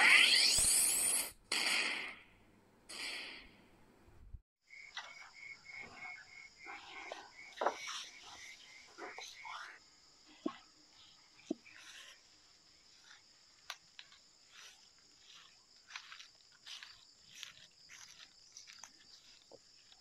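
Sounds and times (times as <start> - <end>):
night insects chirring: 4.6 - 20.0
soft footsteps: 11.4 - 20.0.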